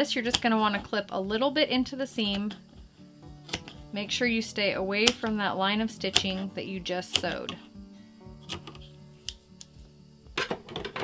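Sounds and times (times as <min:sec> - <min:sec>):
soft background music: 0:00.0 - 0:11.0
scissors snipping fabric: 0:03.5 - 0:03.8, 0:05.0 - 0:05.4, 0:06.0 - 0:06.4, 0:07.1 - 0:07.6.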